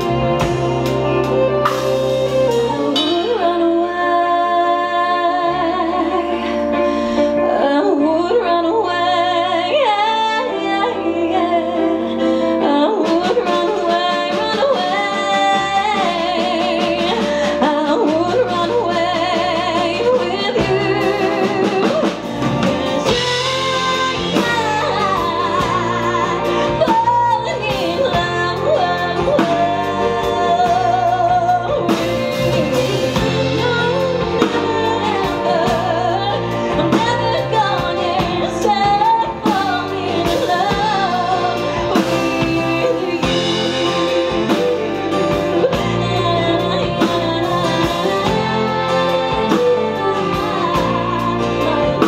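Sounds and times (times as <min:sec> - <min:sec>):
violins: 0:00.0 - 0:52.0
woman singing a pop ballad: 0:00.0 - 0:52.0.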